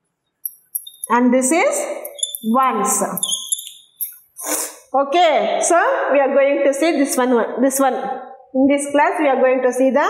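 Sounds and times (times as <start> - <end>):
chalk squeaking on blackboard: 0.4 - 1.2, 1.9 - 4.7
woman speaking: 1.1 - 3.4, 5.0 - 10.0.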